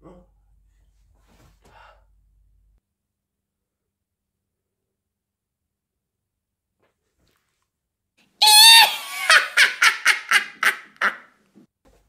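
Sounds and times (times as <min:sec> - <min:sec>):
shrill wavering shriek: 0:08.4 - 0:09.3
cackling laugh: 0:08.4 - 0:11.3.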